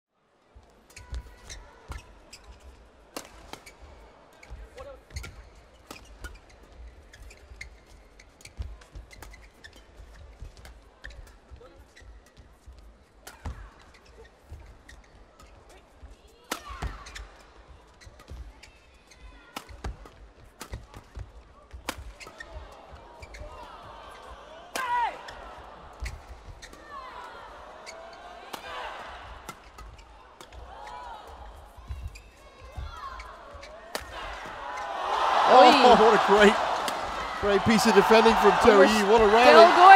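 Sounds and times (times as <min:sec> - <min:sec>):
shoes squeaking: 0:03.5 - 0:11.3, 0:34.8 - 0:39.9
crowd noise: 0:33.5 - 0:39.9.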